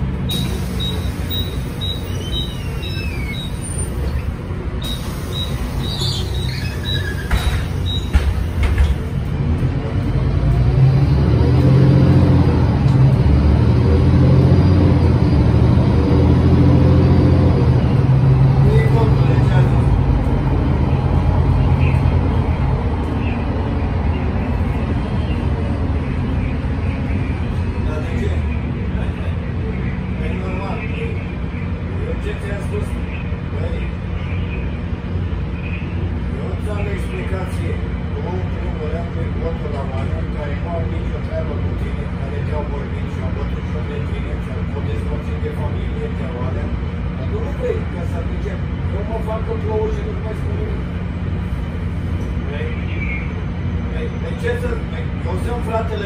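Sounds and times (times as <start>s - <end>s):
bus engine accelerating: 0.0s - 56.0s.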